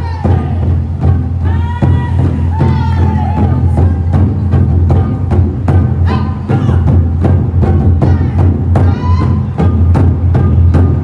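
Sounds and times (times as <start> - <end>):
deep booming drum resonance: 0.0 - 11.0.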